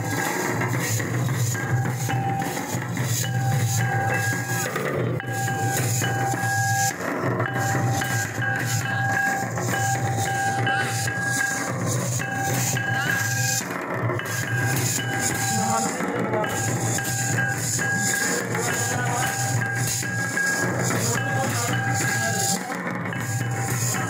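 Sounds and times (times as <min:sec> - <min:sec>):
folk drumming on barrel drums: 0:00.0 - 0:24.0
steady high note: 0:00.0 - 0:24.0.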